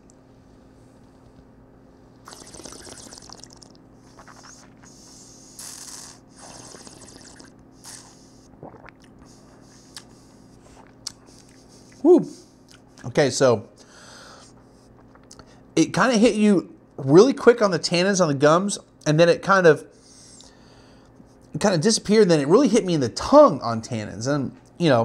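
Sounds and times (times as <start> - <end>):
sipping wine: 2.2 - 5.0, 5.6 - 9.3
wet mouth swishing: 2.2 - 10.2
air sucked through wine hissing: 4.2 - 8.5.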